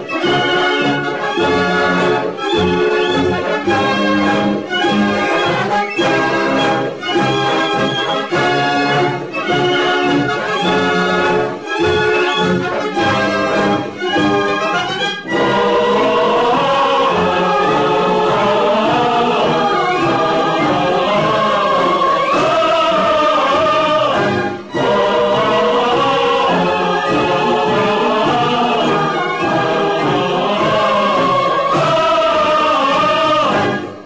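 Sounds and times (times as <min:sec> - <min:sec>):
choir singing: 0:00.0 - 0:34.0
orchestral accompaniment: 0:00.0 - 0:34.0.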